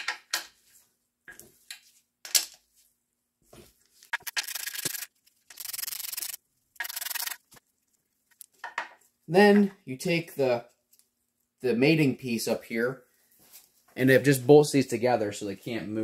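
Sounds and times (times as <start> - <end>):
ratchet wrench clicking: 4.2 - 7.4.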